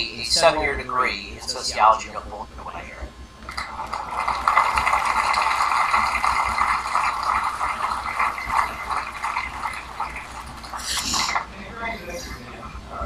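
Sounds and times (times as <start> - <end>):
audience applauding: 3.5 - 11.5.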